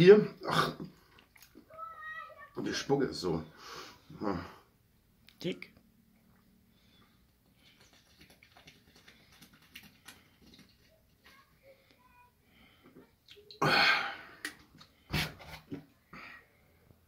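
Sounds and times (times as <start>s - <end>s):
man gulping and swallowing: 13.5s - 15.0s.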